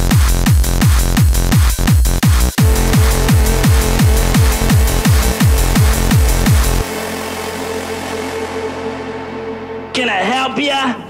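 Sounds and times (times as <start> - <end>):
low bass drone: 2.6 - 10.6
sustained synth chord: 2.6 - 10.6.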